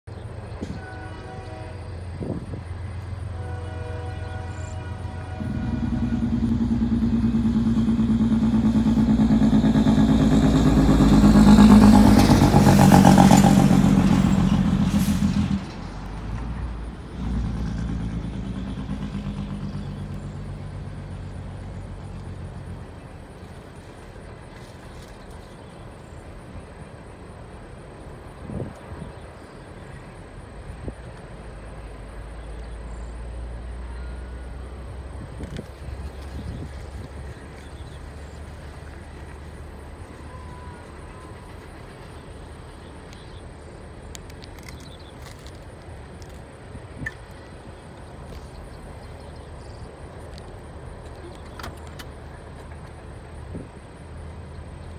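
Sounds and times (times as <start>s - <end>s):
diesel locomotive engine drone: 0.0s - 54.9s
rumble of passing rail cars: 0.0s - 54.9s
train horn blasts: 0.6s - 15.5s, 40.1s - 41.6s.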